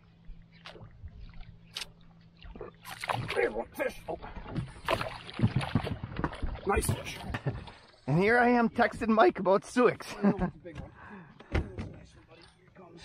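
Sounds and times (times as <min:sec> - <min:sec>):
water splashing and sloshing: 0:00.0 - 0:13.0
knocks and clatter in boat: 0:00.2 - 0:09.4, 0:10.2 - 0:13.0
fish thrashing at surface: 0:04.6 - 0:07.2.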